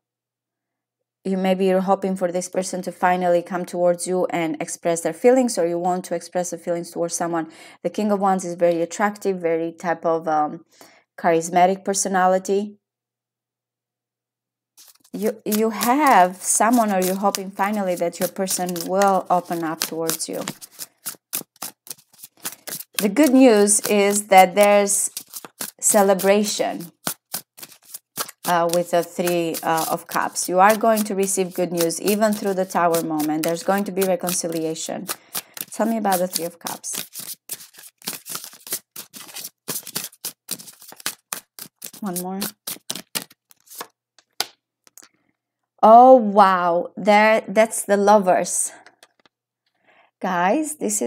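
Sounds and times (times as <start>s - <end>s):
cards shuffled by hand: 14.8s - 45.0s.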